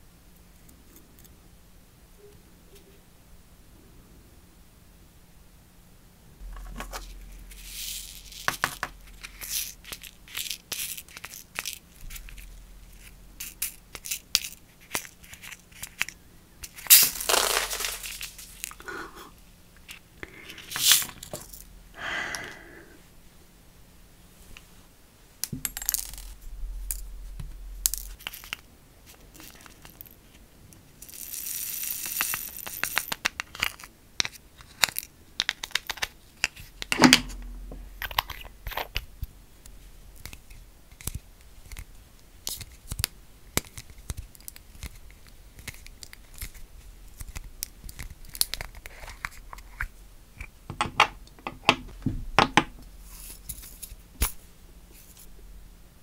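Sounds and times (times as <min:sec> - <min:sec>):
rhinestones hissing as poured: 0:07.1 - 0:12.2, 0:16.7 - 0:18.9, 0:20.3 - 0:21.6, 0:31.0 - 0:33.2
stones clicking into jar: 0:13.4 - 0:18.8, 0:31.1 - 0:36.1
glass crystals rattling in plastic tray: 0:16.7 - 0:18.8, 0:31.0 - 0:33.8.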